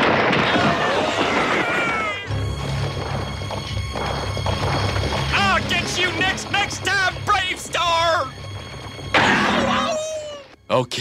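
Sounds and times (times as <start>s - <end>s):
cartoon rocks crashing: 0.0s - 2.3s
low background music: 2.2s - 11.0s.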